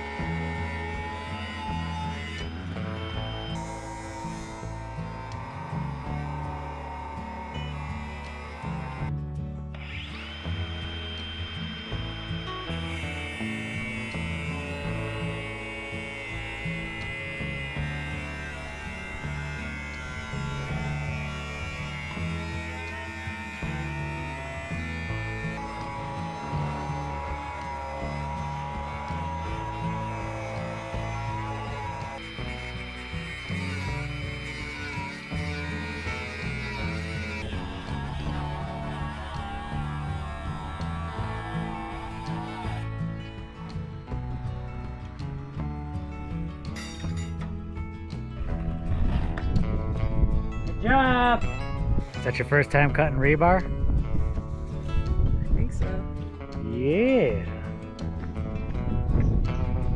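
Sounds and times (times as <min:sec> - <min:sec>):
angle grinder cutting metal: 0:00.0 - 0:44.5.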